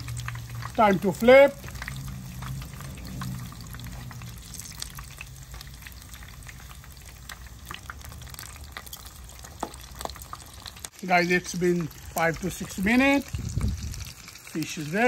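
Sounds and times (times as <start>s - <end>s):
fish sizzling in hot oil: 0.0s - 15.0s
low hum: 1.6s - 7.4s.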